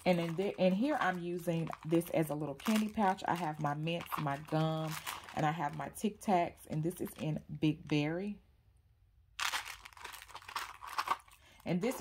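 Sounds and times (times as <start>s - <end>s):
sweet wrappers crinkling: 0.0s - 6.0s, 9.4s - 12.0s.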